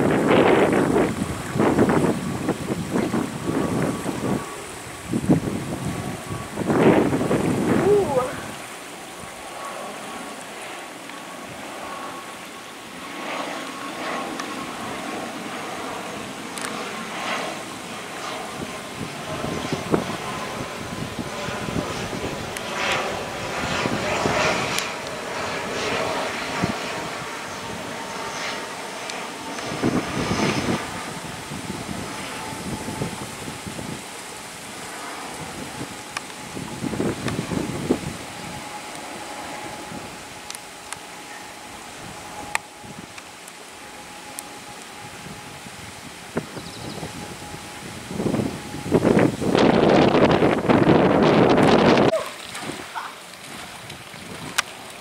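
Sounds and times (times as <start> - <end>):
propeller aircraft drone: 0.0 - 55.0.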